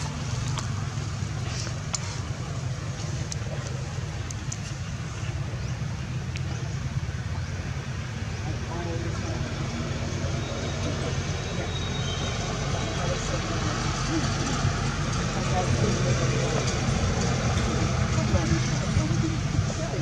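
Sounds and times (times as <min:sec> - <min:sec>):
faint distant voices: 0:00.0 - 0:20.0
steady low rumble: 0:12.7 - 0:20.0.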